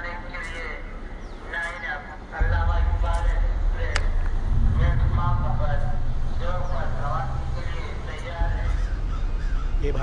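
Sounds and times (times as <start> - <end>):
steady low rumble: 2.2 - 10.0
crows cawing: 8.4 - 10.0.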